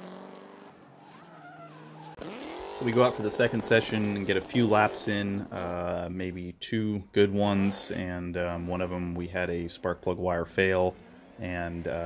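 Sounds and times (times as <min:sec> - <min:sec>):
distant car engine at high revs: 0:00.0 - 0:06.0, 0:10.5 - 0:12.0.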